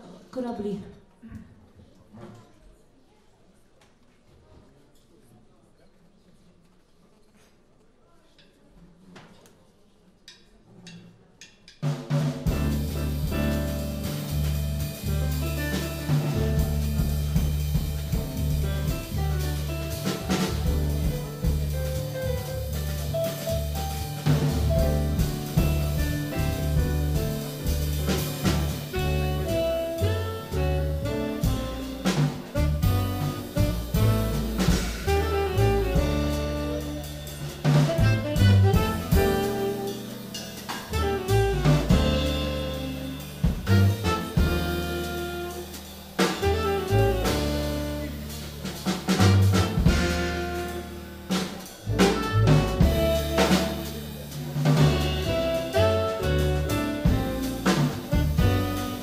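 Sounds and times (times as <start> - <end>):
drum kit and cymbals: 10.3 - 59.0
piano: 11.8 - 59.0
double bass walking: 12.4 - 59.0
saxophone: 28.6 - 48.5, 49.6 - 54.1, 54.8 - 59.0.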